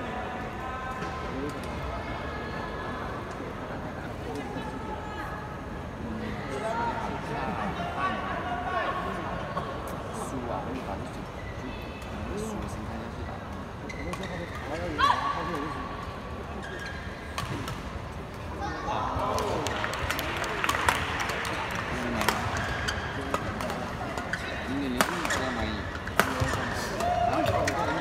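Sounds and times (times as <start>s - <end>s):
arena crowd noise: 0.0s - 28.0s
spectators talking: 0.0s - 28.0s
racket hitting shuttlecock: 26.0s - 27.8s.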